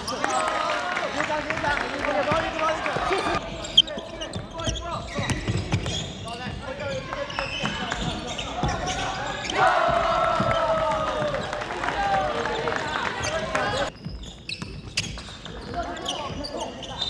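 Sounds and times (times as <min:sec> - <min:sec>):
shoes squeaking: 0:02.3 - 0:11.6, 0:12.3 - 0:17.0
players calling out: 0:06.9 - 0:13.9
basketball bouncing on wooden floor: 0:09.9 - 0:11.4.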